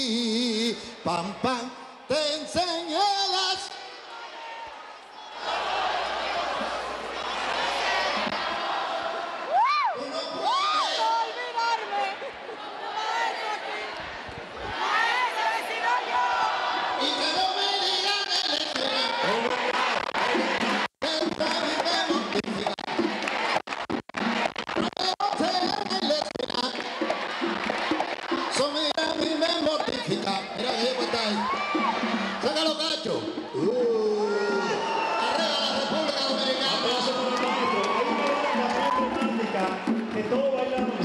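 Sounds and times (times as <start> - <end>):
crowd cheering: 3.3 - 41.0
singers singing a cappella: 5.1 - 9.5, 11.0 - 20.8
loud rising and falling shouts: 12.7 - 17.4.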